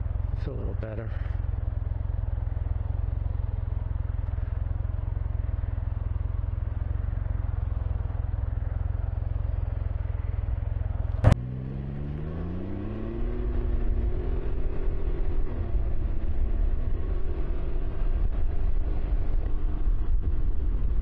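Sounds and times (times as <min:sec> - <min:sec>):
engine idling and accelerating: 0:00.0 - 0:21.0.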